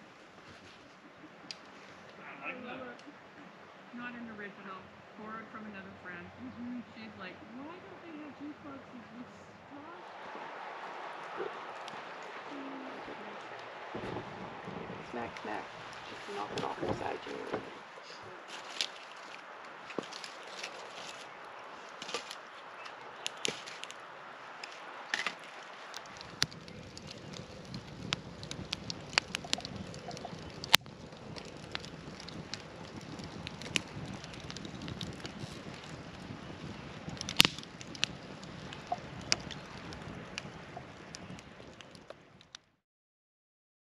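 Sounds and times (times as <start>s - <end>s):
low steady noise: 0.0s - 42.4s
campfire crackling: 0.0s - 42.8s.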